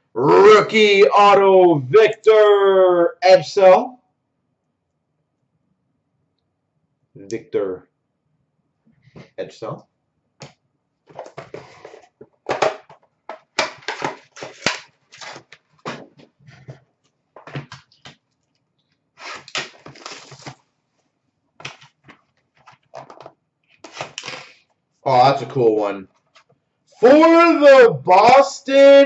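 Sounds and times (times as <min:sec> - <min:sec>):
cardboard boxes rustling and scraping: 0:11.2 - 0:12.2.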